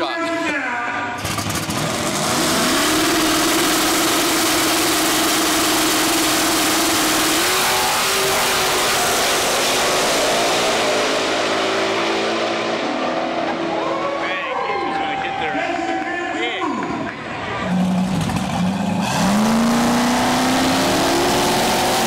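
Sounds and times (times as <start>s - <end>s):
drag car engines revving: 0.0s - 22.0s.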